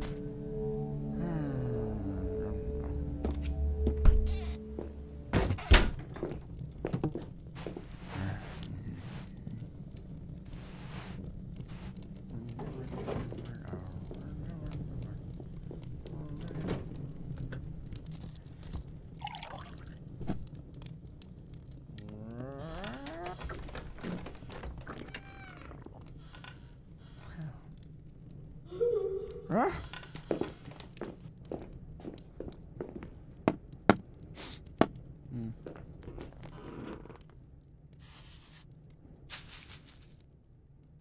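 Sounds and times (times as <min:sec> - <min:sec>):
soft music: 0:00.0 - 0:05.8
heavy wooden door thudding shut: 0:05.3 - 0:06.1
small knocks and crackles: 0:05.3 - 0:28.6, 0:29.8 - 0:41.0.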